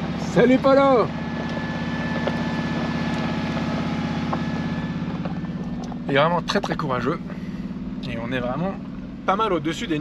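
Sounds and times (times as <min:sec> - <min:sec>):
car engine running at low revs: 0:00.0 - 0:10.0.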